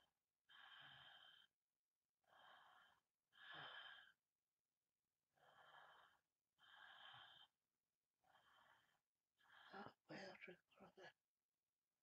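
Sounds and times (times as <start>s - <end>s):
woman breathing: 0.5s - 1.5s, 2.2s - 4.2s, 5.3s - 7.6s, 8.2s - 10.0s.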